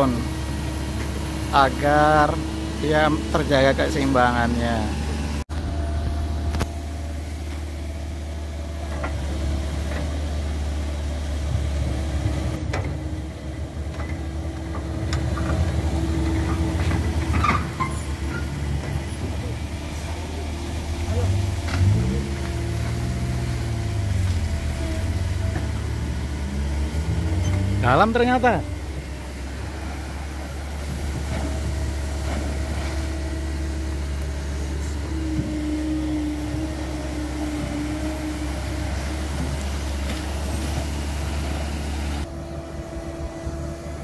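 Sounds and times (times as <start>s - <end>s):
excavator diesel engine running: 0.0s - 44.0s.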